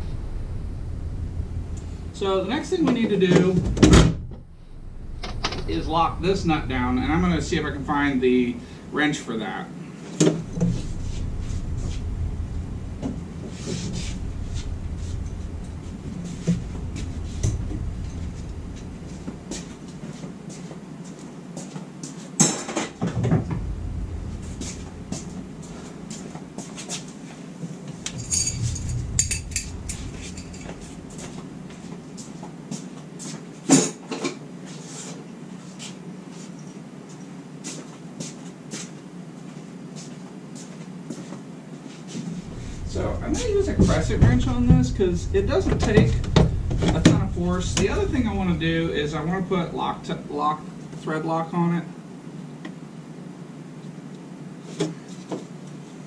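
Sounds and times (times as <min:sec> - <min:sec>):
low rumble: 0:00.0 - 0:08.9, 0:10.4 - 0:20.5, 0:23.0 - 0:26.6, 0:27.9 - 0:32.5, 0:42.4 - 0:50.9.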